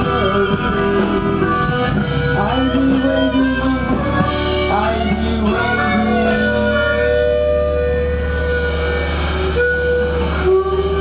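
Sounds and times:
electric guitar sustained notes: 0:00.0 - 0:11.0
low bass drone: 0:00.0 - 0:11.0.

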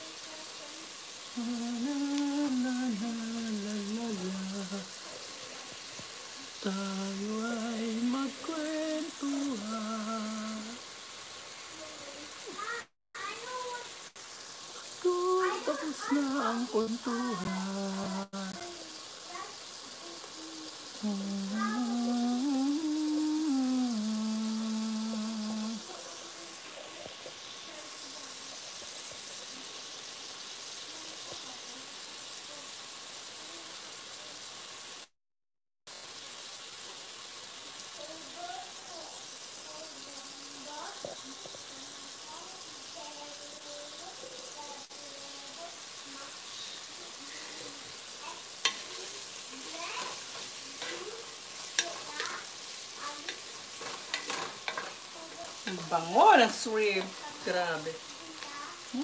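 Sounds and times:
shrimp sizzling in a pot: 0:00.0 - 0:35.2, 0:35.9 - 0:59.0
wooden spoon scraping a pot: 0:48.6 - 0:55.9.

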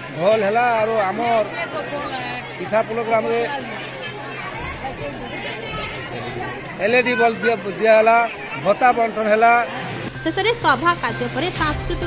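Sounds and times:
background chatter of voices: 0:00.0 - 0:12.0
man speaking loudly: 0:06.8 - 0:09.7.

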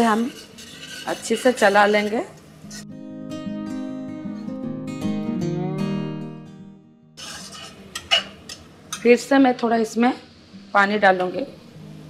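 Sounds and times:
spatula scraping a pan: 0:00.0 - 0:02.9, 0:07.2 - 0:08.6
plucked acoustic guitar music: 0:02.6 - 0:07.2.

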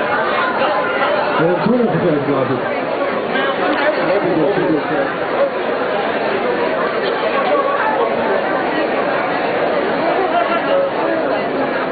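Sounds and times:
crowd babble: 0:00.0 - 0:11.9.

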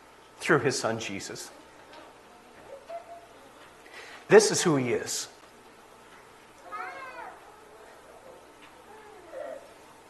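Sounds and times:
small child crying out: 0:06.6 - 0:07.8.

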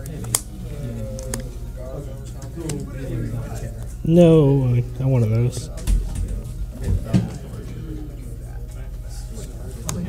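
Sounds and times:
indistinct voices in a room: 0:00.0 - 0:10.0
steady low hum: 0:00.0 - 0:10.0.

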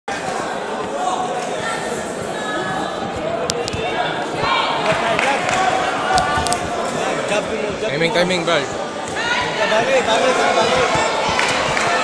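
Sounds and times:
ringside voices: 0:00.1 - 0:12.0.

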